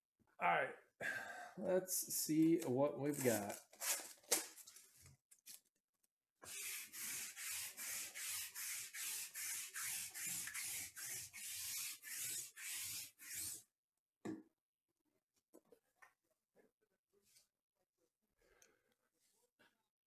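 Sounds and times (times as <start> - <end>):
lint roller rubbing over fabric: 6.5 - 13.6.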